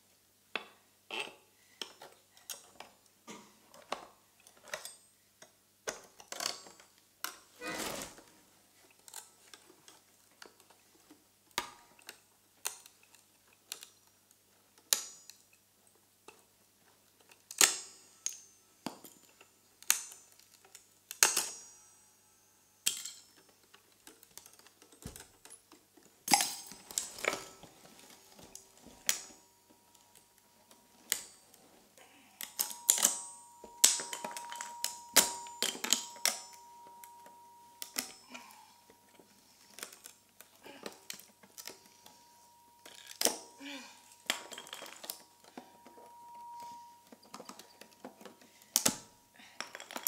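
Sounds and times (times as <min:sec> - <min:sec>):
quiet held accordion reed tones: 0:27.4 - 0:49.4.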